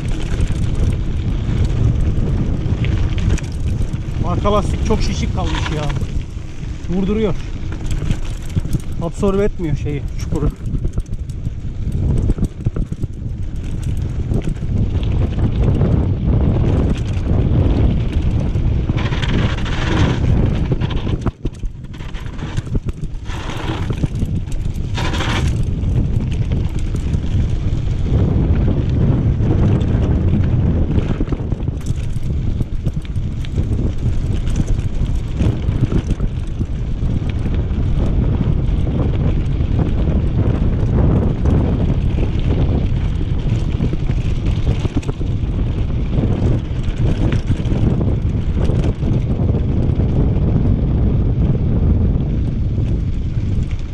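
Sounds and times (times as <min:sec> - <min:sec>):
bike tyres and frame clattering: 0:00.0 - 0:53.9
wind rumble on microphone: 0:00.0 - 0:53.9.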